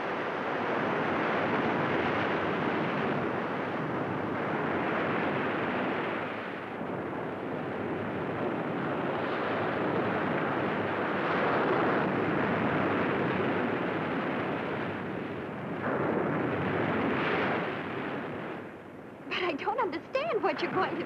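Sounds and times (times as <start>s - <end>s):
ocean surf breaking on sand: 7.8s - 18.7s.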